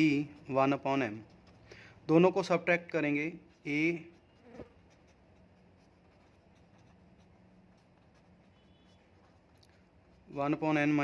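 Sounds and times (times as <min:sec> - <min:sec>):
pen scratching on paper: 0:00.0 - 0:11.0.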